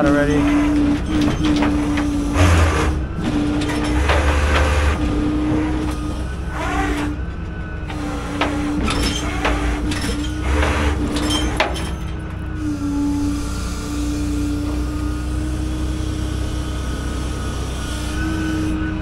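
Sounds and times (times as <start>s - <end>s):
metal knocks and clanks: 0.0s - 12.4s
tow truck engine and hydraulics whine: 0.0s - 19.0s.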